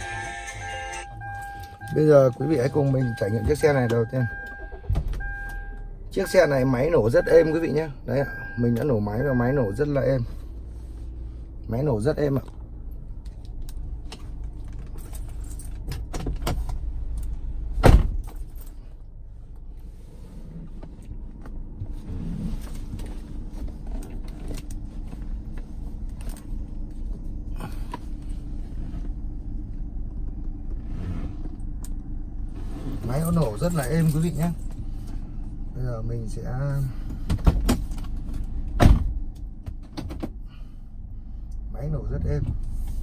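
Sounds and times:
light clicks of controls: 41.4s - 41.7s.

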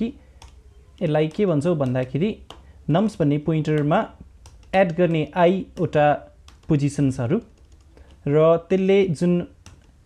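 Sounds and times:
man talking: 0.0s - 0.2s, 1.0s - 7.5s, 8.2s - 9.6s
computer keyboard keystrokes: 0.4s - 2.7s, 3.7s - 8.3s, 9.6s - 10.0s.

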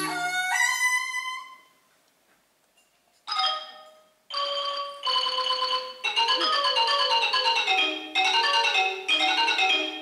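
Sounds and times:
oboe holding note: 0.0s - 1.6s
wooden xylophone notes: 0.0s - 1.7s, 3.3s - 10.0s.

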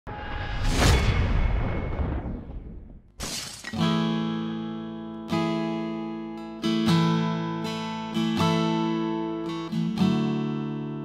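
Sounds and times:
swoosh and boom: 0.0s - 3.3s
sudden crash: 0.0s - 3.7s
acoustic guitar strumming: 3.7s - 11.0s.

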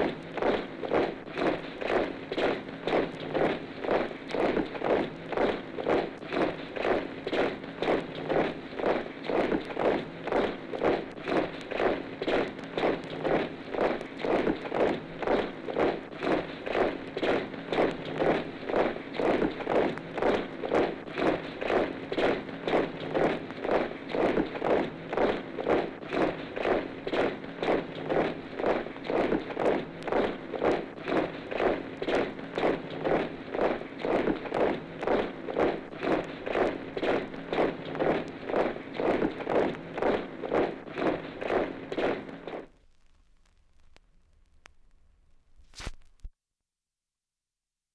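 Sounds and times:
soldiers marching in step: 0.0s - 42.8s
faint steady hum: 0.0s - 46.3s.

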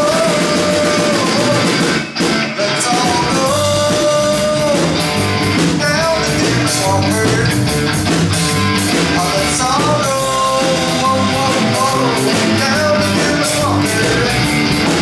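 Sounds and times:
bass guitar: 0.0s - 15.0s
drums: 0.0s - 15.0s
electric guitar: 0.0s - 15.0s.

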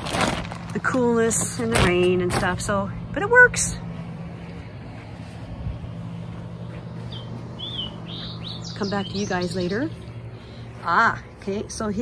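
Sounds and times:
steady low hum: 0.0s - 12.0s
small bird chirping: 7.0s - 10.2s.

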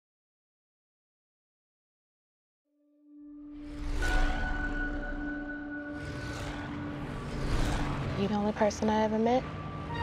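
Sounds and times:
propeller planes rumbling: 5.8s - 9.9s.

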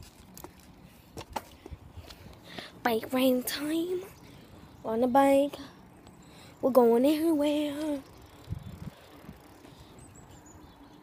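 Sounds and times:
girl speaking: 2.8s - 4.2s, 4.8s - 5.7s, 6.6s - 8.1s.

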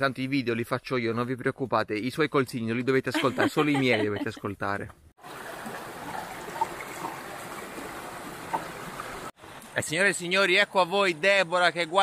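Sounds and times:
water gurgling: 5.2s - 9.3s
water rushing over rocks: 5.2s - 9.3s.

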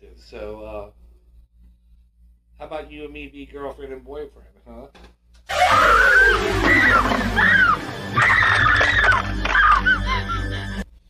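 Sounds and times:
short rising and falling cries: 5.5s - 10.4s
film music with falling tone: 5.5s - 10.8s.

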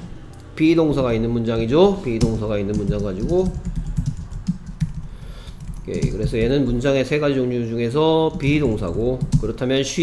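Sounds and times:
keyboard typing clicks: 2.2s - 6.7s.

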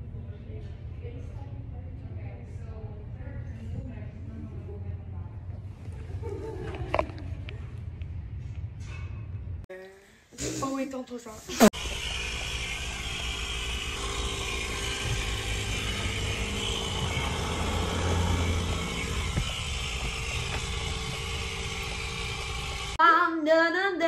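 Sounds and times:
car cabin road and engine noise: 11.7s - 23.0s.

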